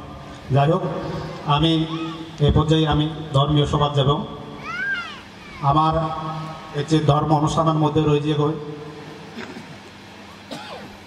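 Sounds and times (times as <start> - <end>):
man speaking into a microphone: 0.5 - 4.4, 5.6 - 8.8.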